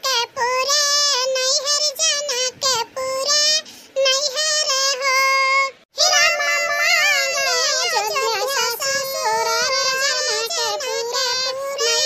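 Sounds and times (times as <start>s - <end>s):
sped-up cartoon voice singing: 0.0s - 12.0s.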